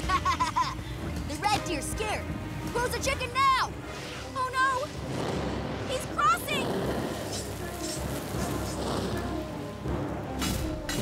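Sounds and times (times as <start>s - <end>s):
background music: 0.0s - 11.0s
crackling fire: 0.0s - 11.0s.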